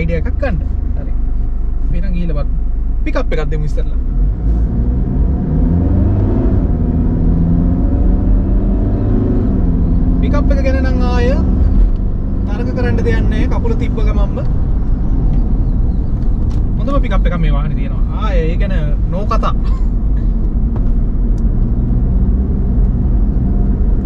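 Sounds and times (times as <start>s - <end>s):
car engine accelerating: 0.0s - 24.0s
road rumble: 0.0s - 24.0s.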